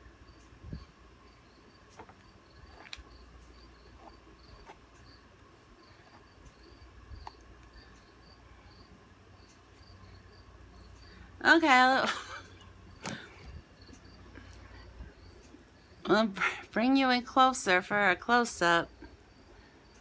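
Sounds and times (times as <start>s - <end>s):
cricket chirping: 0.2s - 11.3s, 12.8s - 16.1s.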